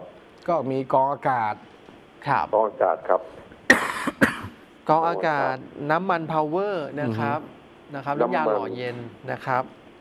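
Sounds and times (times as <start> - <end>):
man speaking: 2.2 - 3.4, 4.9 - 9.7
man coughing: 3.7 - 4.6.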